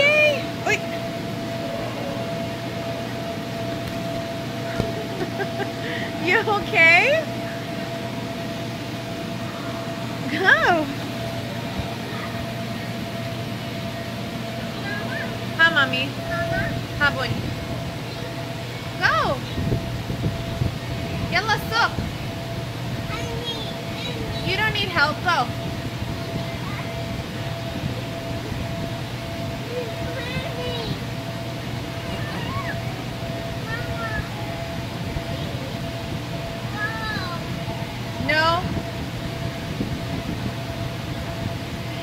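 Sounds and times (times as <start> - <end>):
electric air blower humming: 0.0 - 42.0
thin steady whine: 0.0 - 42.0
children calling out: 32.1 - 32.9.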